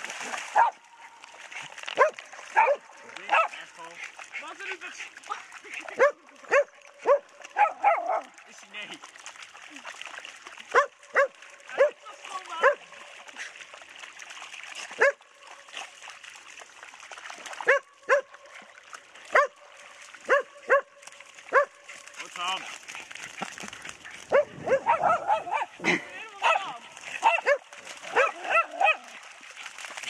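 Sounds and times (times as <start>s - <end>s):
faint water splashing: 0.0s - 30.0s
dogs barking sharply: 0.5s - 0.8s, 2.0s - 3.6s, 6.0s - 8.3s, 24.3s - 25.8s, 27.2s - 29.1s.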